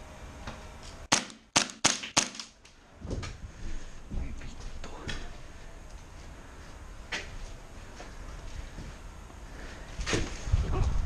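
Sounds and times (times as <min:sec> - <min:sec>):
airsoft rifle shots cracking: 0:01.1 - 0:02.6.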